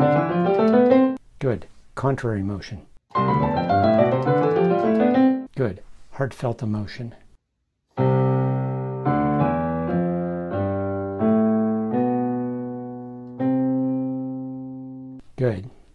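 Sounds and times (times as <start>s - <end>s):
digital piano chords: 0.0s - 1.2s, 3.1s - 5.5s, 8.0s - 15.2s.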